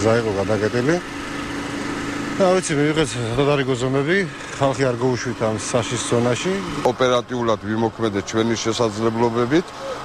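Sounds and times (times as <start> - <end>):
engine running steadily: 0.0 - 10.0.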